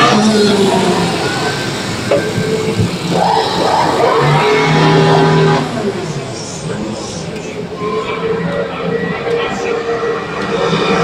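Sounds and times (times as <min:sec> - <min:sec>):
race car engine droning: 0:00.0 - 0:11.0.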